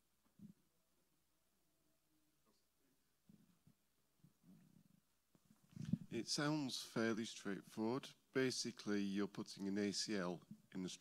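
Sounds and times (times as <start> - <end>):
man speaking: 6.1 - 11.0.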